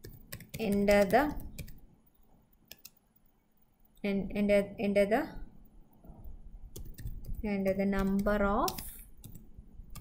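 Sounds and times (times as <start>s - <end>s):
computer keyboard keystrokes: 0.0s - 1.8s, 2.7s - 3.0s, 6.7s - 10.0s.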